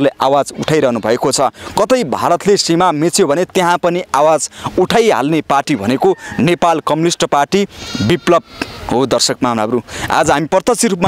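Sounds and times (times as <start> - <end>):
man speaking: 0.0 - 11.0
livestock bleating: 7.8 - 8.8.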